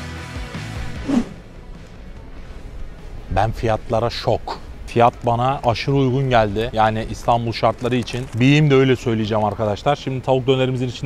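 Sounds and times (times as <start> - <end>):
background music: 0.0 - 7.3
swoosh transition effect: 0.8 - 1.5
faint background noise: 1.2 - 11.0.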